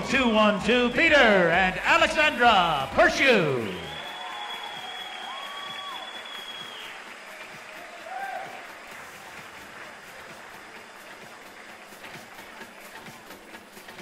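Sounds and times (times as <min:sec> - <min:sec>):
audience applauding: 0:02.0 - 0:14.0
long high whistle: 0:03.5 - 0:07.1.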